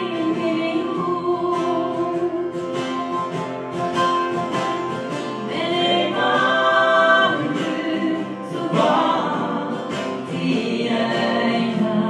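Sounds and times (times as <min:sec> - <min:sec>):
woman singing: 0:00.0 - 0:03.0, 0:05.3 - 0:12.0
acoustic guitar: 0:00.0 - 0:12.0
lap steel guitar: 0:00.0 - 0:12.0.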